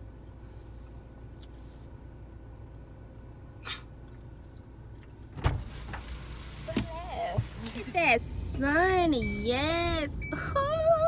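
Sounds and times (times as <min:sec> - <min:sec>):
low steady car hum: 0:00.0 - 0:11.0.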